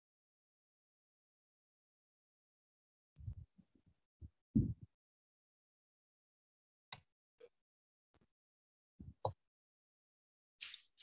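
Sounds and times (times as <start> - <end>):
low dull thumps: 4.6 - 4.9.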